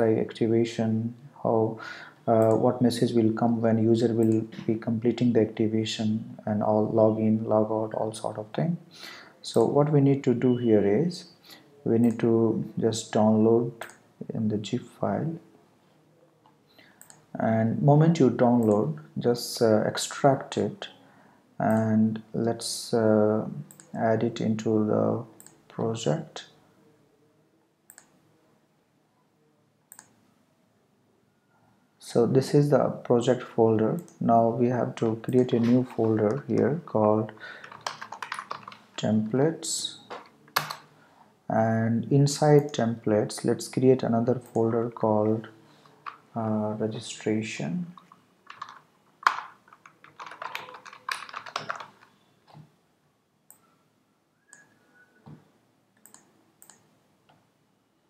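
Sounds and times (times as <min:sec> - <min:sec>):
computer mouse clicks: 0:17.0 - 0:17.3, 0:27.9 - 0:28.2, 0:29.9 - 0:30.2, 0:56.0 - 0:56.9
computer keyboard typing: 0:35.0 - 0:39.1, 0:39.9 - 0:40.9, 0:48.0 - 0:52.2.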